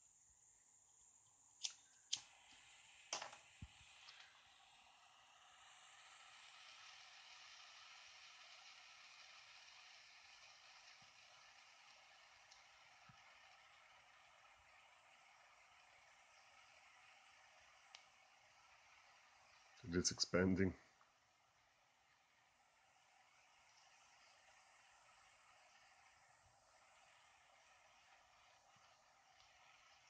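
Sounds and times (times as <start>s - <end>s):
pen torch flame hissing: 1.5s - 30.0s
faint ticks: 17.9s - 18.2s.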